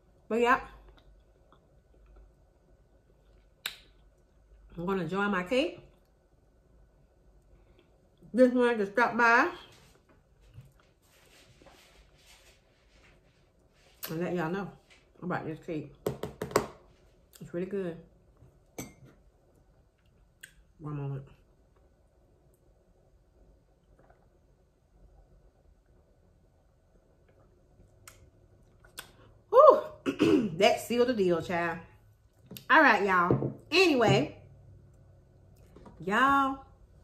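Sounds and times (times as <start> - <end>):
ceramic mug clink: 18.8 - 19.1.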